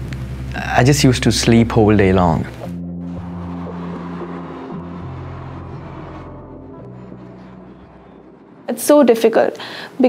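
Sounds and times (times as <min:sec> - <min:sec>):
slow background music: 0:00.0 - 0:10.0
car passing by: 0:02.6 - 0:09.1.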